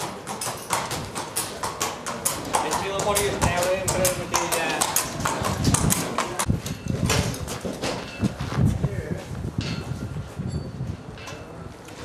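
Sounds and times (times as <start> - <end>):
hooves clopping on concrete: 0.0 - 12.0.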